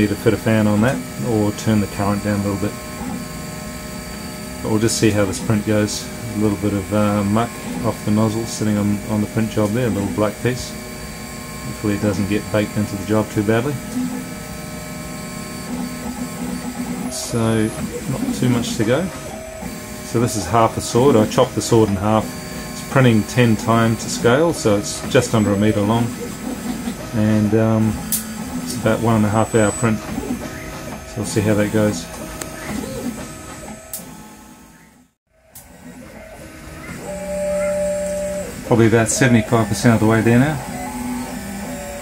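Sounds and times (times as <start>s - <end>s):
stepper motors whining: 0.0s - 42.0s.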